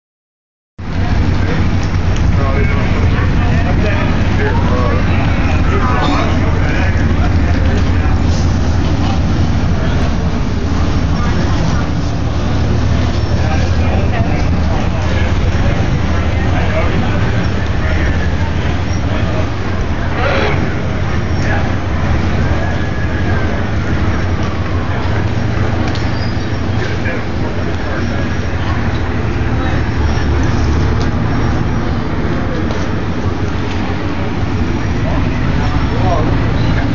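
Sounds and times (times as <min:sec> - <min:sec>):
diesel engine droning: 0:00.8 - 0:36.9
faint voices: 0:00.8 - 0:36.9.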